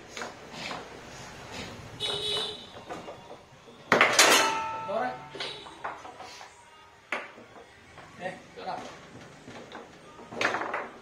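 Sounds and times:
foosball ball knocking: 9.5s - 11.0s.

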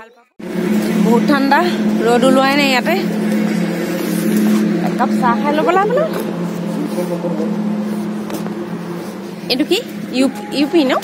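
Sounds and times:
road traffic noise: 0.0s - 11.0s
vehicle engine humming: 0.0s - 11.0s.

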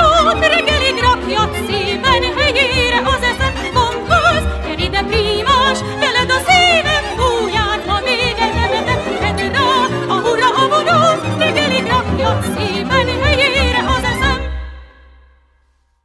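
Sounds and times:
background music: 0.0s - 15.5s.

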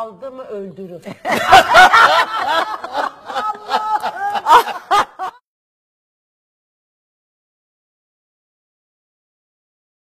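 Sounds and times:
women laughing: 1.1s - 5.4s.

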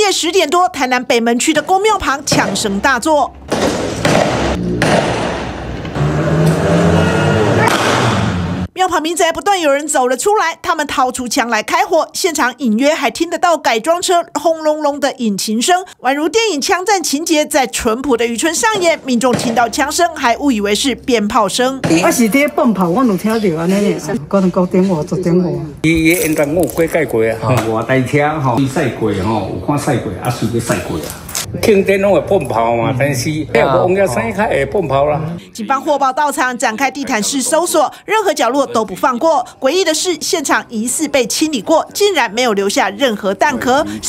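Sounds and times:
people's voices: 17.7s - 44.0s
person talking: 35.2s - 40.0s, 40.6s - 44.0s.

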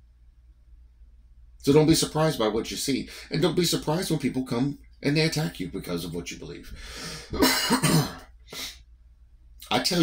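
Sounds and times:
brief breath: 6.7s - 7.4s
man clearing his throat: 7.3s - 8.3s.

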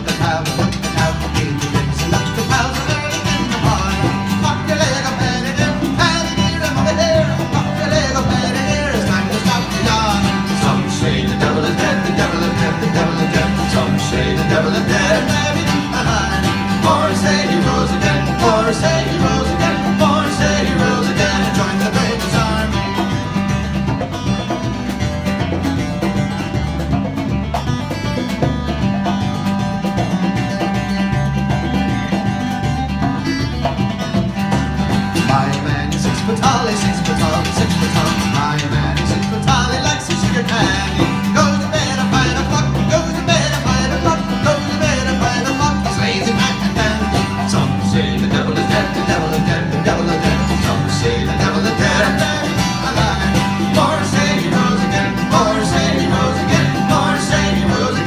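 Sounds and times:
bass line: 0.0s - 58.0s
congas: 0.0s - 58.0s
electric guitar: 0.0s - 58.0s
fiddle playing fast melody: 0.0s - 58.0s
strummed acoustic guitar: 0.0s - 58.0s.

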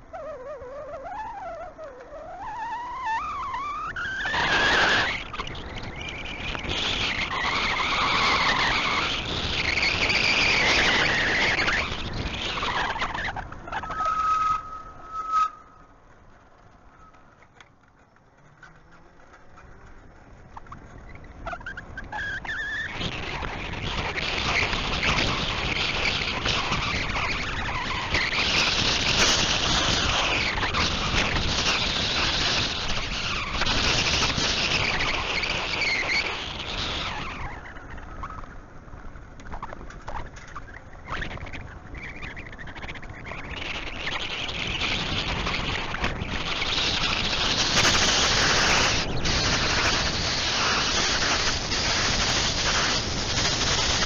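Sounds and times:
high squeal: 0.0s - 16.0s, 16.8s - 17.5s, 18.6s - 38.6s, 39.4s - 54.0s
wind buffeting microphone: 0.0s - 17.4s, 18.6s - 54.0s.

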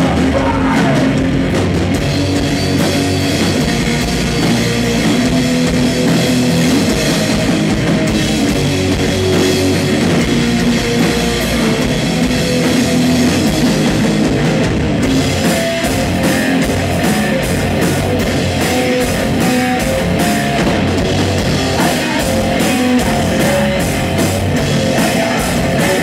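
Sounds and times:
bass guitar: 0.0s - 26.0s
distorted electric guitars: 0.0s - 26.0s
drum kit: 0.0s - 26.0s.

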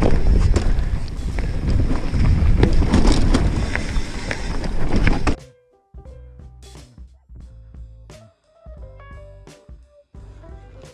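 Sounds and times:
bike rattling knocks: 0.0s - 5.4s
bike tyre rumble: 0.0s - 5.4s
wind buffeting microphone: 0.0s - 5.4s.

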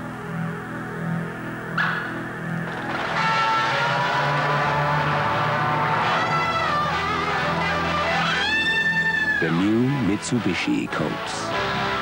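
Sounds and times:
electronic synthesizer music: 0.0s - 12.0s.

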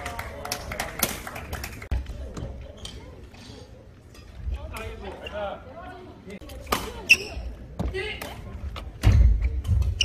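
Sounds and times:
voices in a hall: 0.0s - 10.0s.

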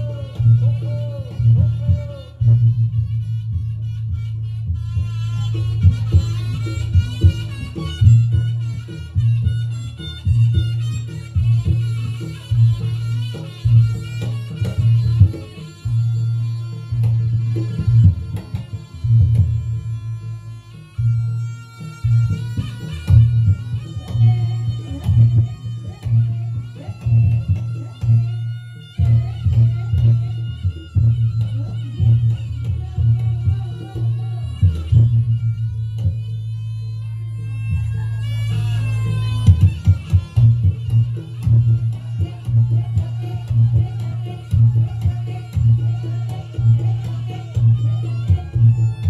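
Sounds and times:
drums and gongs beat: 0.0s - 49.0s.

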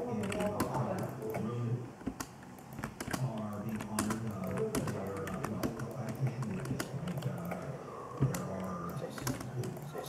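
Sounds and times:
keyboard typing: 0.0s - 10.0s.

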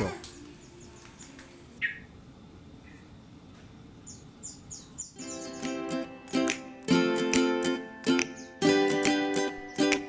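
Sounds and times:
small bird chirping: 0.4s - 2.2s, 4.0s - 6.0s, 8.2s - 10.0s.

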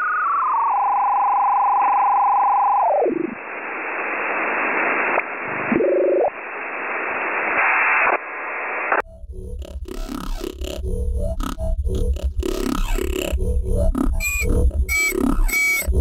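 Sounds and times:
static hiss: 3.2s - 9.0s
rising electronic warble: 9.0s - 16.0s.

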